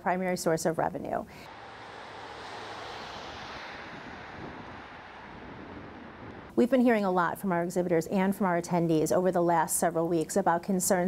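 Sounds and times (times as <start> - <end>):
wind: 0.0 - 11.0
traffic rushing: 1.3 - 6.6.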